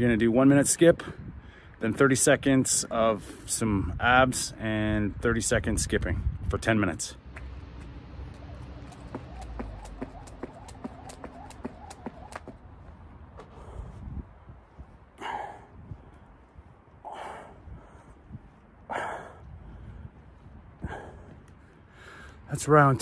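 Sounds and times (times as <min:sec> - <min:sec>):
man breathing forcefully: 0:13.4 - 0:14.4, 0:15.0 - 0:22.5.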